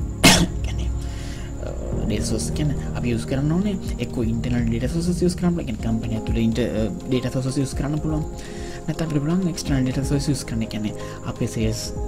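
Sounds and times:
steady low hum: 0.0s - 6.9s
person coughing: 0.2s - 0.8s.

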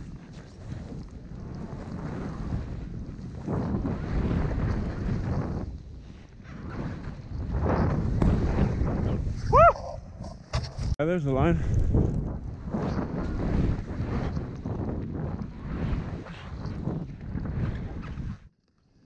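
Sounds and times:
snowboard rushing through snow: 0.0s - 9.6s, 12.2s - 18.4s
wind buffeting microphone: 0.0s - 18.5s
person whooping: 9.4s - 10.1s.

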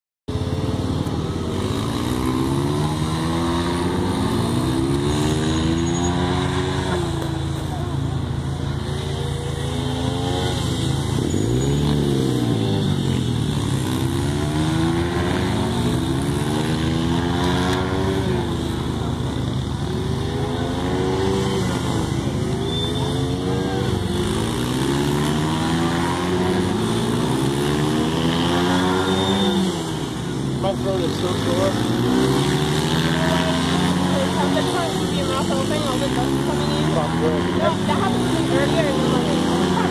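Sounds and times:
dirt bike engines revving: 0.3s - 39.9s
dirt bike passing close: 0.4s - 39.9s.

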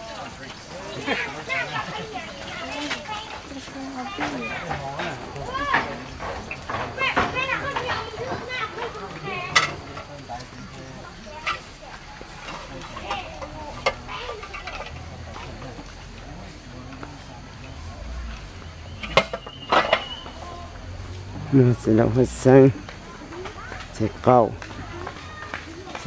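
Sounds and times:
faint background talk: 0.0s - 26.0s.

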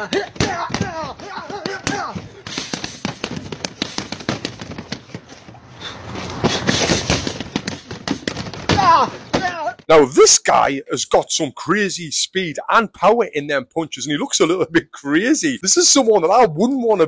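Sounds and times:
punches slapping a punching dummy: 0.0s - 5.6s, 6.3s - 9.8s
man's voice: 8.7s - 17.0s.

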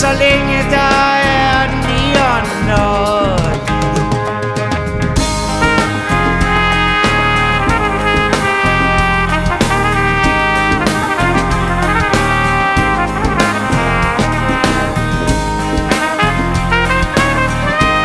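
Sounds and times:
bass: 0.0s - 18.0s
drums: 0.0s - 18.0s
brass horn melody: 4.0s - 18.0s.

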